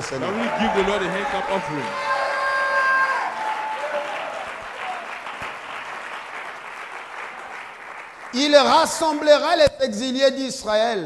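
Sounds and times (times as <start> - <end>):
congregation clapping and cheering: 0.0 - 9.7.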